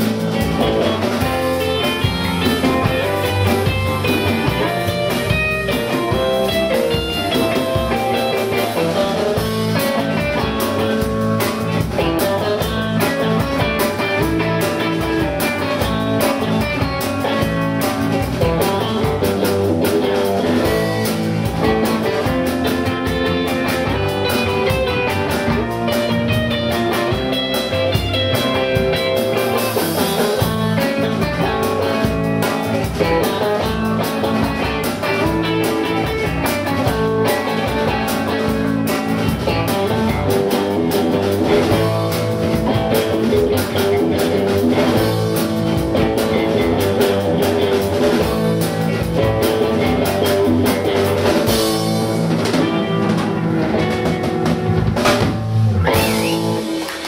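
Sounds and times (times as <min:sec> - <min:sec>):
bass guitar: 0:00.0 - 0:57.0
drum kit: 0:00.0 - 0:57.0
electric guitars: 0:00.0 - 0:57.0.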